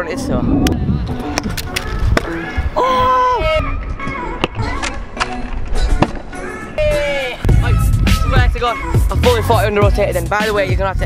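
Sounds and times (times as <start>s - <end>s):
music with heavy beat: 7.4s - 11.0s.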